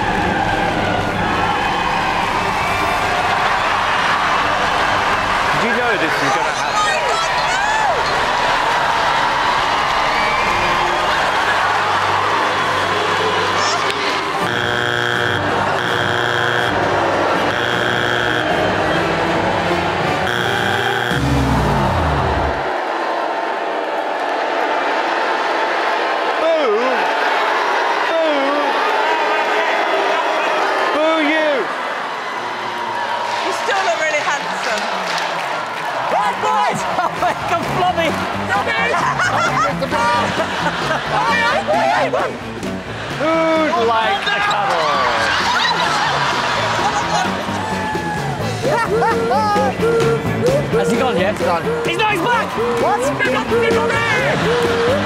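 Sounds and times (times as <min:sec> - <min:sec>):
music: 0:00.0 - 0:23.2, 0:33.0 - 0:55.0
audience screaming and cheering: 0:00.0 - 0:55.0
harsh buzzer blasts: 0:14.3 - 0:19.1, 0:20.2 - 0:22.6
deep falling tone: 0:20.3 - 0:22.7.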